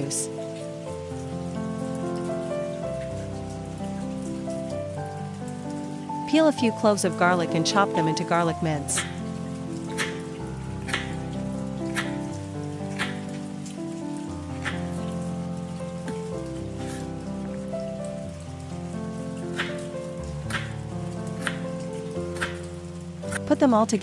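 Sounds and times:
background music with held notes: 0:00.0 - 0:24.0
knife chopping on wooden board: 0:09.0 - 0:09.2, 0:10.0 - 0:11.2, 0:11.9 - 0:13.4, 0:14.6 - 0:15.1, 0:19.6 - 0:19.9, 0:20.5 - 0:20.8, 0:21.4 - 0:21.7, 0:22.4 - 0:22.7.

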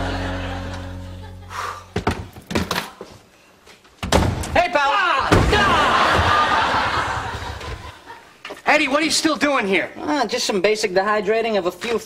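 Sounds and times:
door slamming shut: 0:04.0 - 0:04.6, 0:05.2 - 0:06.4.

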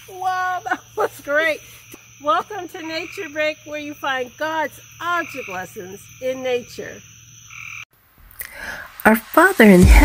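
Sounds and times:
frogs calling: 0:00.0 - 0:07.9
insect-like hum: 0:00.0 - 0:10.0.

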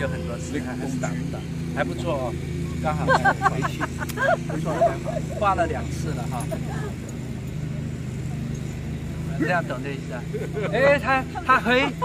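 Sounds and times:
faint voices: 0:00.0 - 0:12.0
low motor hum: 0:00.0 - 0:12.0.

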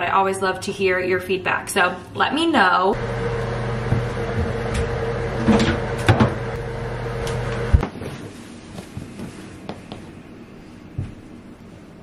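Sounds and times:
washing machine humming: 0:02.9 - 0:09.3
knocks and clunks: 0:03.8 - 0:06.5.

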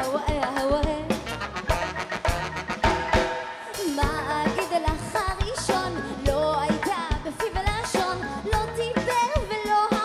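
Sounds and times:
woman singing lead vocal: 0:00.0 - 0:01.4, 0:03.6 - 0:10.0
drum-kit beat: 0:00.0 - 0:10.0
funk band playing: 0:00.0 - 0:10.0.

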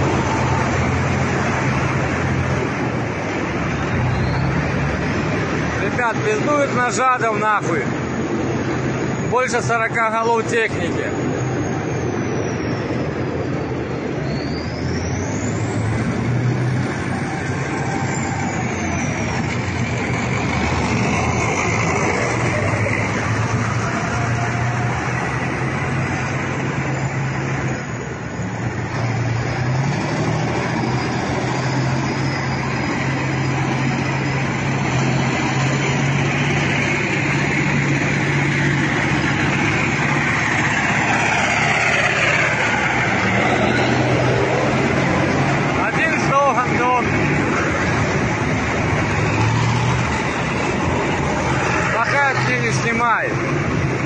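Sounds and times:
engine whines: 0:00.0 - 0:54.0
military vehicle engines droning: 0:00.0 - 0:54.0.

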